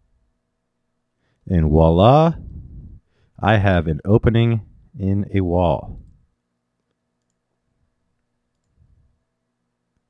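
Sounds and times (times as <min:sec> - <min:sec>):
faint computer mouse clicks: 0:06.8 - 0:07.4, 0:08.5 - 0:08.8.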